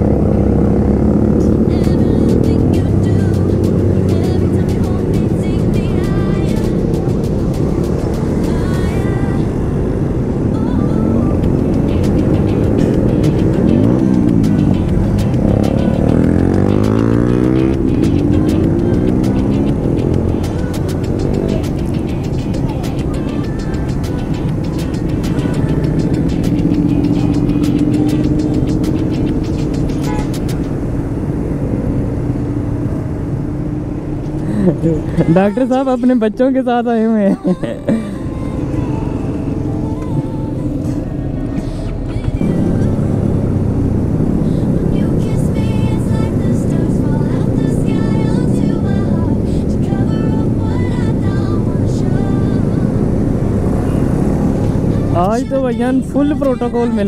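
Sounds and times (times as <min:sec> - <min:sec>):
motorcycles passing by: 0:00.0 - 0:57.0.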